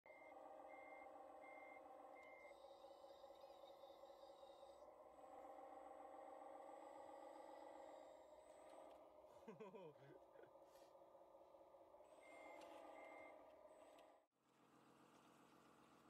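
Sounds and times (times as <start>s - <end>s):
reversing beeps: 0.1s - 4.4s, 12.1s - 14.0s
hydraulic whine: 0.1s - 16.0s
model loader humming: 0.1s - 16.0s.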